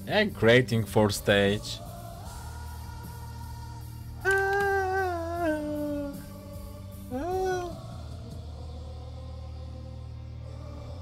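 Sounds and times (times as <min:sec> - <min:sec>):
man singing long notes: 0:04.2 - 0:08.2.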